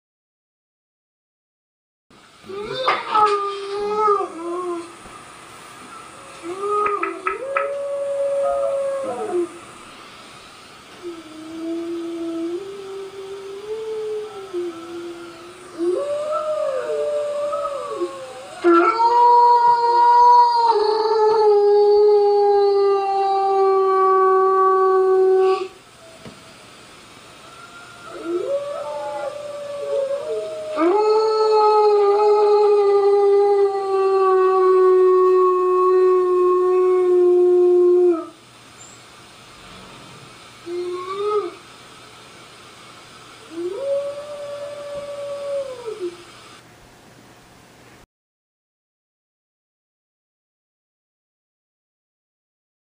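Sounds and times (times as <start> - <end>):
wolf howls: 5.8 - 9.7, 11.0 - 26.7, 27.4 - 38.4, 40.6 - 41.6, 43.4 - 46.2.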